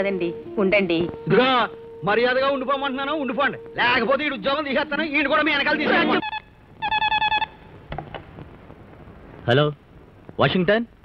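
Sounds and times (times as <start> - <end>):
telephone ringing: 0.4 - 7.6.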